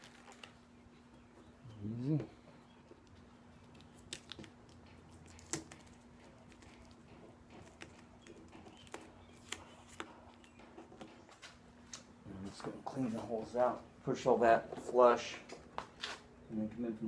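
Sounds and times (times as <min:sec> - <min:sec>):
tape peeling off plastic: 0:03.6 - 0:07.0.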